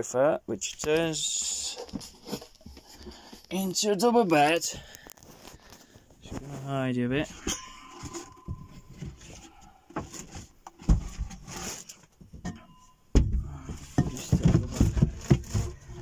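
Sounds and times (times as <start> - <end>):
muffled microphone handling rustle: 5.0 - 7.3.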